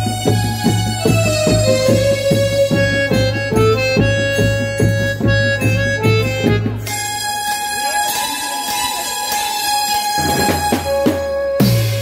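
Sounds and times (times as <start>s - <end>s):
steady drum beat: 0.0s - 9.2s, 10.1s - 12.0s
electronic keyboard melody: 0.0s - 12.0s.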